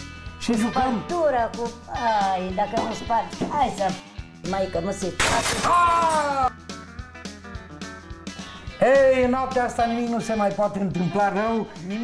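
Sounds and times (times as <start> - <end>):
background music with soft beat: 0.0 - 5.2, 6.1 - 12.0.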